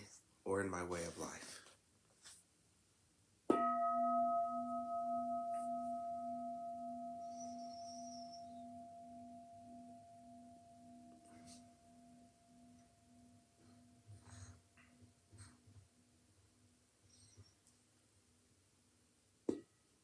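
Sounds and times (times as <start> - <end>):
singing bowl ringing: 3.5 - 14.1.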